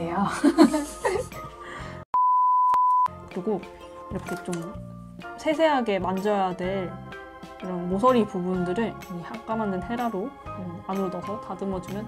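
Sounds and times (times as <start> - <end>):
background music: 0.0 - 2.1, 3.1 - 12.0
electronic censor beep: 2.2 - 3.1.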